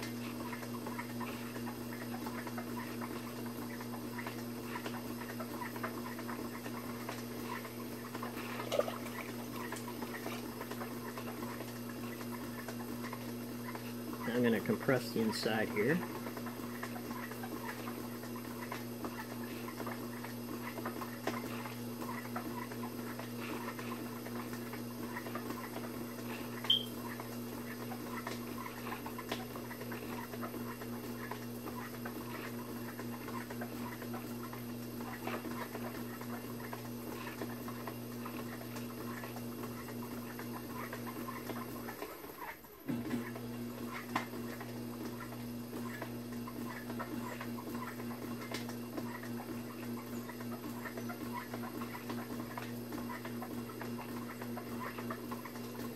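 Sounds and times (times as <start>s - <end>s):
pottery wheel motor hum: 0.0s - 55.9s.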